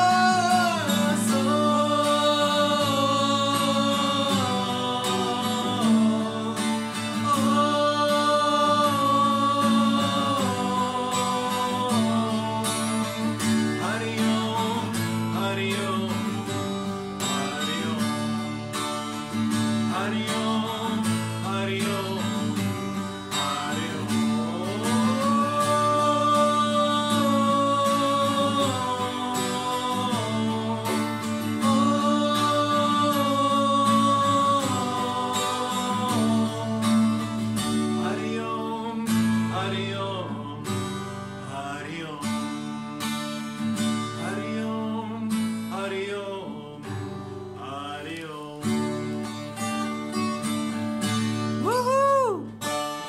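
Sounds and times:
man singing: 0.0s - 43.2s, 43.8s - 49.7s, 51.6s - 52.7s
strummed acoustic guitar: 0.0s - 53.0s.

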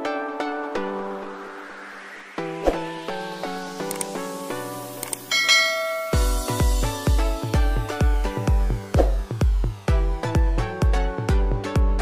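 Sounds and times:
light plucked music: 2.4s - 12.0s
soft clicks: 3.8s - 4.1s
bright bell chime: 5.3s - 6.8s.

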